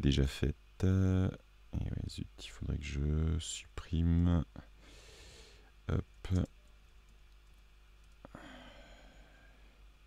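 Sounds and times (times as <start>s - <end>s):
faint low room hum: 0.0s - 10.0s
soft sigh-like breath: 8.3s - 9.8s.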